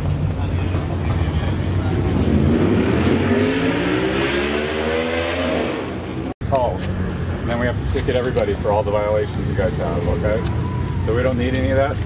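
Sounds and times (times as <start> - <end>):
car engine accelerating: 0.9 - 6.4.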